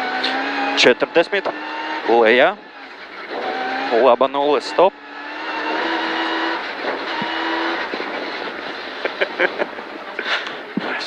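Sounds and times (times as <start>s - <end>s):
car engine high-revving: 0.0s - 10.8s.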